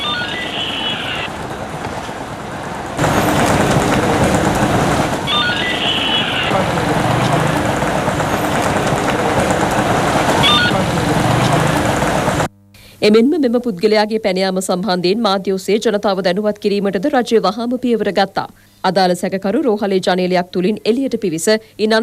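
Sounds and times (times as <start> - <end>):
motorcycles passing: 0.0 - 12.5
road traffic: 0.0 - 12.5.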